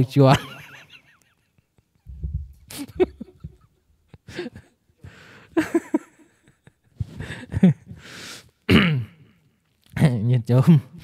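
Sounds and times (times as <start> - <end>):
man clearing his throat: 8.7 - 9.3.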